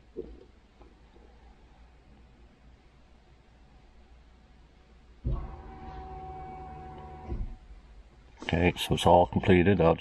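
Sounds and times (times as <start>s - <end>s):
fuel pump electric whine: 5.2s - 7.7s.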